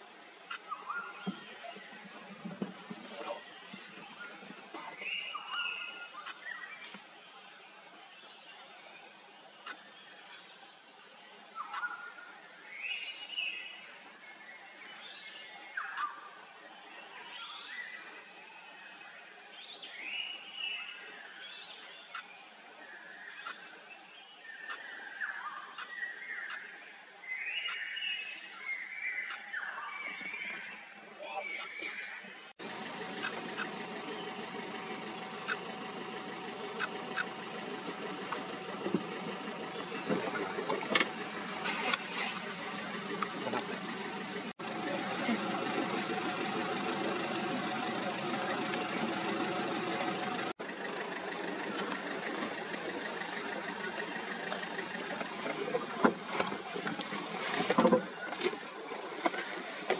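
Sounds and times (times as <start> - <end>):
sharp clicks: 35.4 - 35.6, 36.8 - 37.3.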